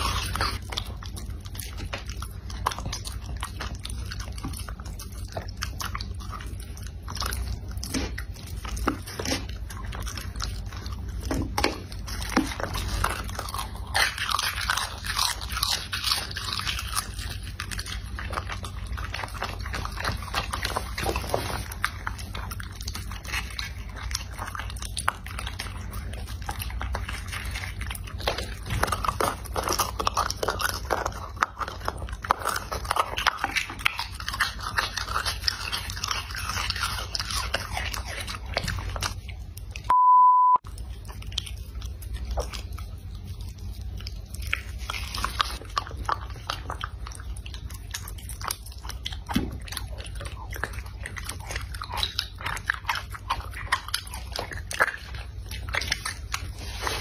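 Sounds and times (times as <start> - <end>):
dog chewing and licking food: 0.0 - 40.0, 40.6 - 57.0
short steady beep: 39.9 - 40.6.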